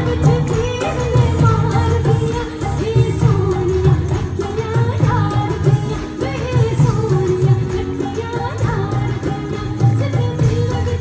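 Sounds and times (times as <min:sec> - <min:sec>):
band with heavy drum beat: 0:00.0 - 0:11.0.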